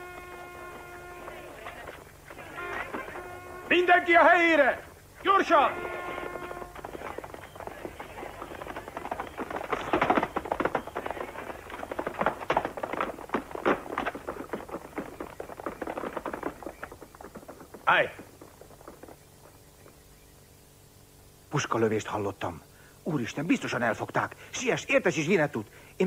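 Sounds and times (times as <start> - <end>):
footsteps and knocks on wooden boards: 5.7 - 20.0.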